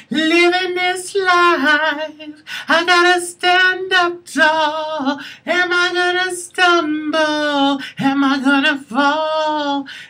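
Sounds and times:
woman singing a cappella: 0.0s - 10.0s.

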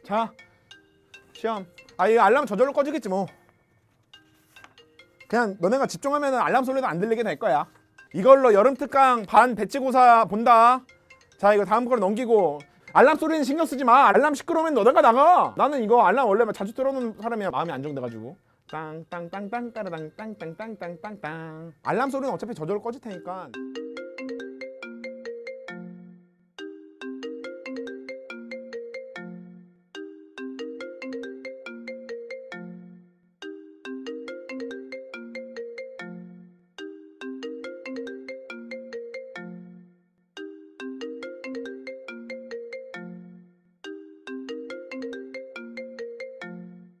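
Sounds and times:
phone alarm ringtone melody: 0.0s - 47.0s.

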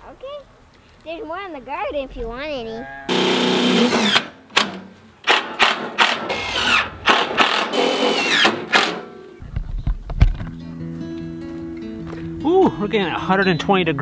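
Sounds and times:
cordless drill driving screws: 3.1s - 9.1s
background music: 10.5s - 14.0s.

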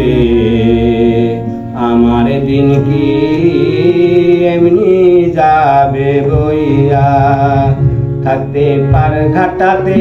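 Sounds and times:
harmonium chords: 0.0s - 10.0s
man singing folk song: 1.8s - 10.0s.

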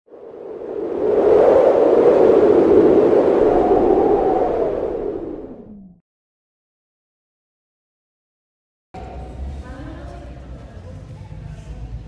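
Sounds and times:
rushing whoosh: 0.1s - 6.0s.

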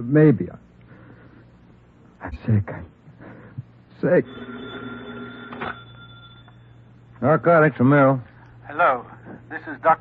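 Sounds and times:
telephone ringing: 4.2s - 6.9s.

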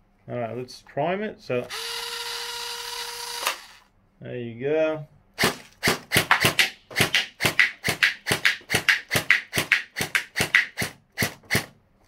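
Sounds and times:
gel blaster rapid firing: 5.4s - 11.7s.

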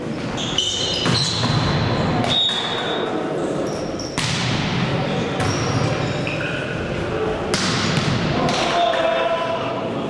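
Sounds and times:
volleyball smack: 4.2s - 4.6s, 7.5s - 8.7s.

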